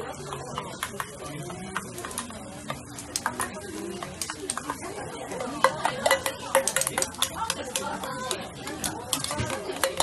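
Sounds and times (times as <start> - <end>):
metal spatula clattering on griddle: 5.5 - 10.0.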